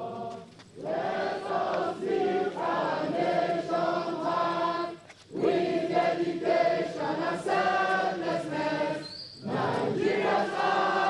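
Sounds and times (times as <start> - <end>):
large group singing in chorus: 0.0 - 11.0.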